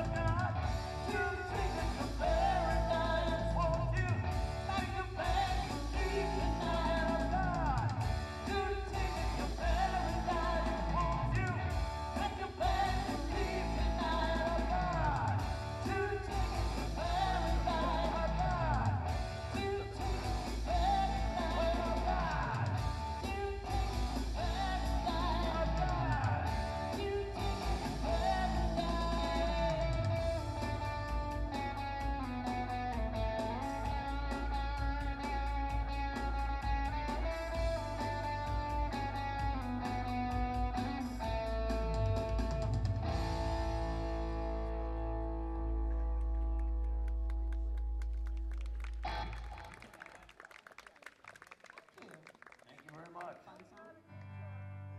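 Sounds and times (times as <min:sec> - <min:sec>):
person singing: 0:00.0 - 0:41.7
electric bass: 0:00.0 - 0:49.7, 0:54.1 - 0:54.9
keyboard: 0:00.0 - 0:49.8
electric guitar: 0:00.0 - 0:50.4, 0:53.8 - 0:54.9.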